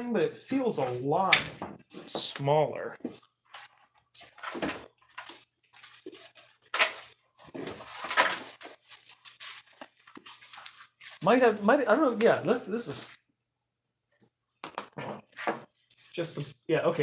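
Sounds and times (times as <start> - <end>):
objects rustling and knocking: 0.8 - 2.4, 3.0 - 11.5, 14.6 - 15.8.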